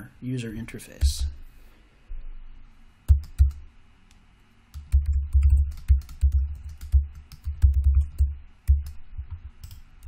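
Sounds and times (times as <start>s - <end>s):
computer keyboard typing: 3.1s - 3.7s, 4.7s - 10.0s.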